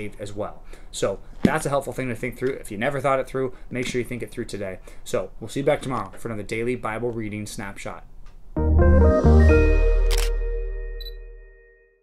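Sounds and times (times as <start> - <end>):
music chord: 8.6 - 12.0
camera shutter click: 10.0 - 10.4.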